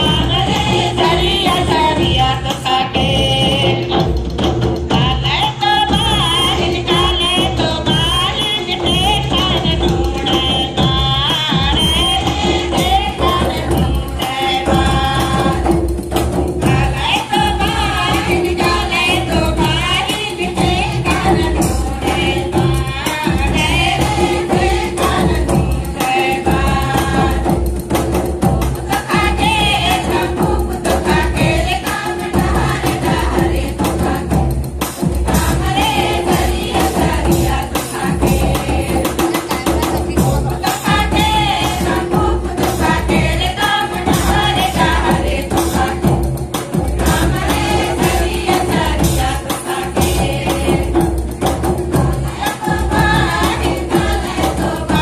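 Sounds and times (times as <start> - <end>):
group singing folk song: 0.0 - 55.0
repeating drum beat: 0.0 - 55.0.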